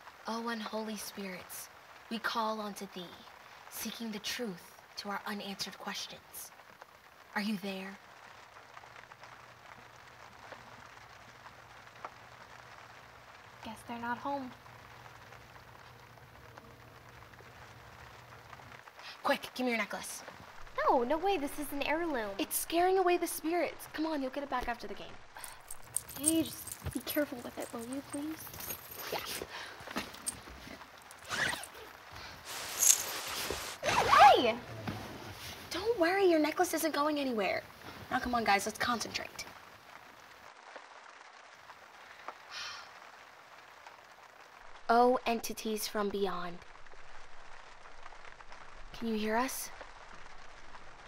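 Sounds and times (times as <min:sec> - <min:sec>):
faint steady hiss: 0:00.0 - 0:51.0
short soft hiss: 0:32.2 - 0:33.9.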